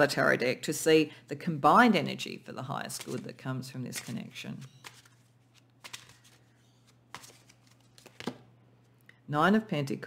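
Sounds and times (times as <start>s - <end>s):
cards being shuffled: 2.9s - 3.3s, 3.9s - 8.5s.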